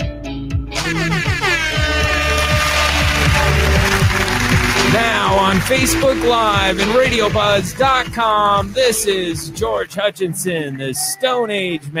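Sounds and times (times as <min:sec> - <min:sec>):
steady low drone: 0:00.9 - 0:09.6
radio intro music: 0:01.9 - 0:09.6.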